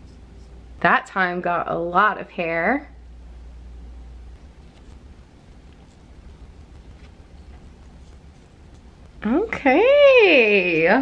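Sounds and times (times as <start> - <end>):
razor scraping skin: 0.0 - 0.6, 4.4 - 9.8
steady low hum: 0.0 - 11.0.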